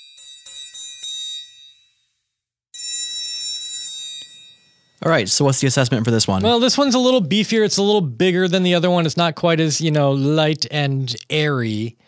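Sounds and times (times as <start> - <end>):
triangle strikes ringing: 2.8 - 5.0.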